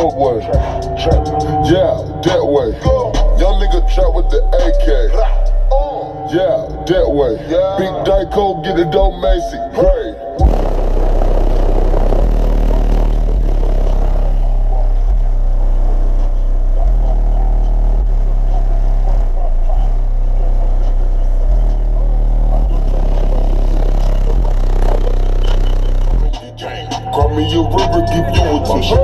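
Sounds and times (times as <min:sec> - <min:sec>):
deep bass from car stereo: 0:00.0 - 0:29.0.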